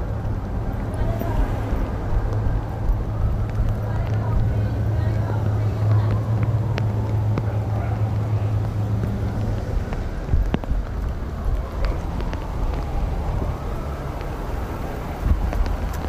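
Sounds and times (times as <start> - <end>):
indistinct voices: 0.0 - 10.3
idling vehicles humming: 0.0 - 16.0.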